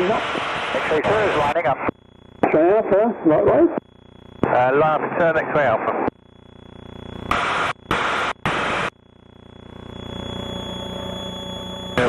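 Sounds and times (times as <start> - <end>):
faint thin high whine: 0.0 - 12.0
radio static hiss: 0.0 - 12.0
aircraft engine drone: 3.9 - 12.0.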